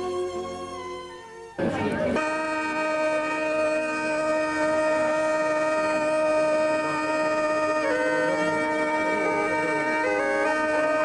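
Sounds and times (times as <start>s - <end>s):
bagpipe drone chord: 0.0s - 11.0s.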